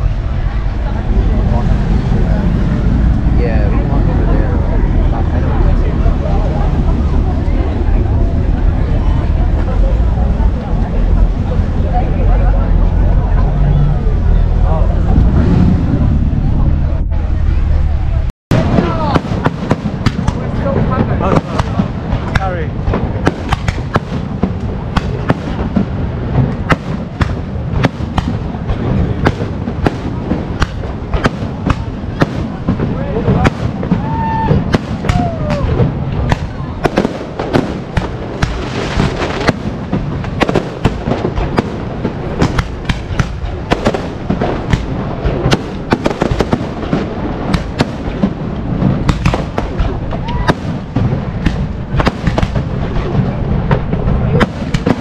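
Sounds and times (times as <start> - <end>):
fireworks banging and crackling: 0.0 - 55.0.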